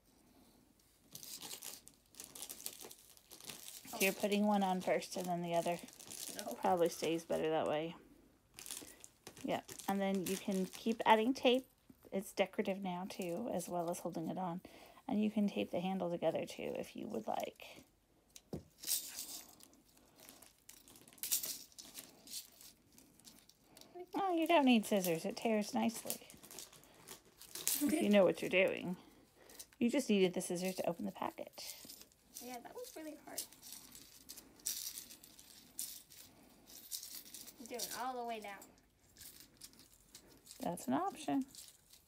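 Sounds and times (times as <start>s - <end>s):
homemade shaker rattling: 1.1s - 7.9s, 18.6s - 42.0s.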